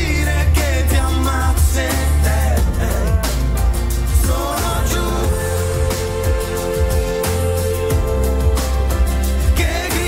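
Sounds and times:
live pop band music: 0.0 - 10.0.

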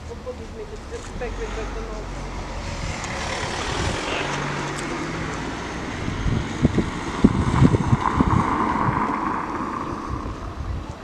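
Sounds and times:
wind buffeting a microphone: 0.7 - 11.0
gusty low thumps: 1.6 - 11.0.

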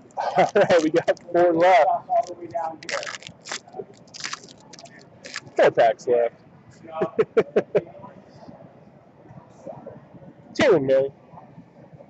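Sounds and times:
foil wrappers crinkling: 0.4 - 1.3, 2.2 - 5.6.

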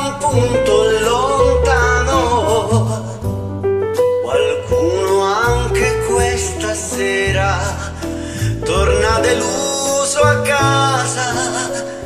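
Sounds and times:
instrumental backing track: 0.0 - 12.0
man singing a slow ballad: 0.0 - 12.0.

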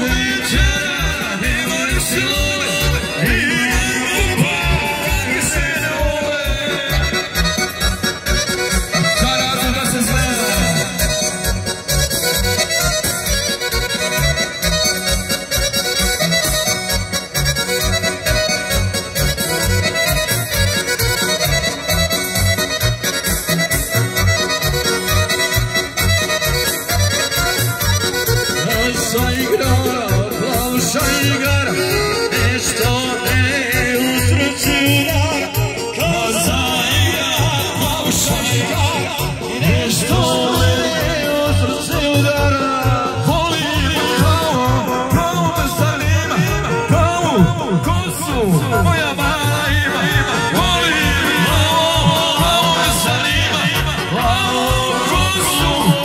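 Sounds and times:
steady bass beat: 0.0 - 12.6
accordion folk dance music: 0.0 - 56.0.

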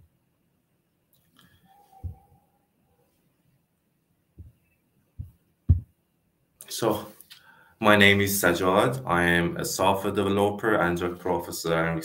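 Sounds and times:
dull low thumps: 5.2 - 6.0.

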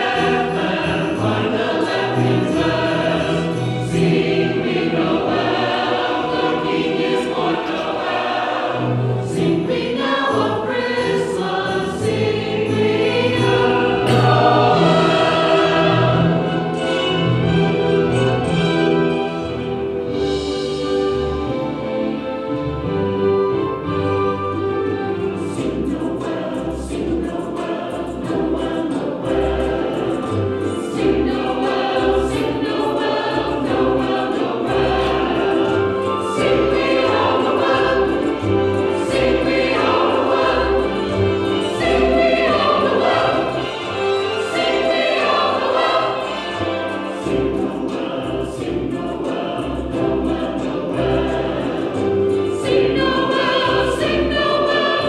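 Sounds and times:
choir singing: 0.0 - 55.0
instrumental accompaniment with bass: 0.0 - 55.0.

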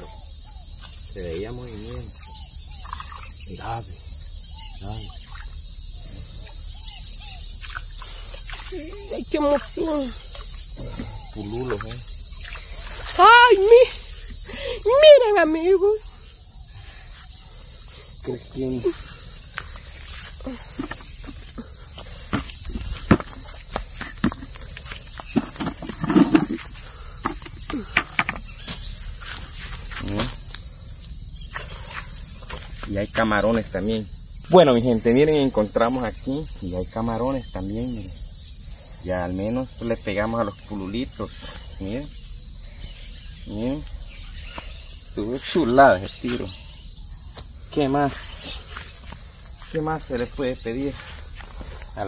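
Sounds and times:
insects chirring: 0.0 - 52.0
footsteps: 7.6 - 14.0, 18.9 - 30.4.

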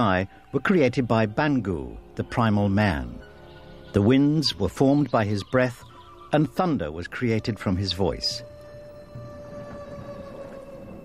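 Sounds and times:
soft droning background music: 0.0 - 11.0.

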